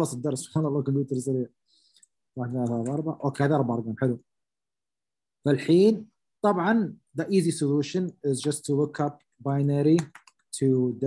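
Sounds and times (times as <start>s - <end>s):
man speaking: 0.0s - 1.6s, 2.3s - 4.3s, 5.4s - 11.0s.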